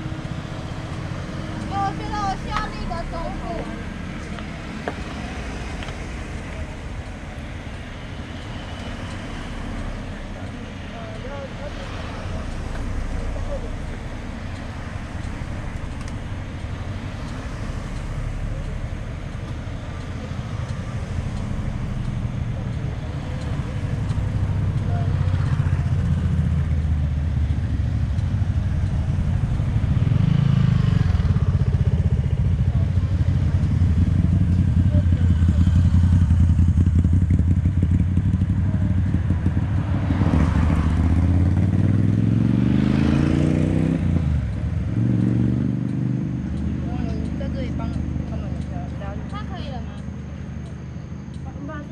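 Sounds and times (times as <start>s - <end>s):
motorcycle engine running: 10.1s - 51.9s.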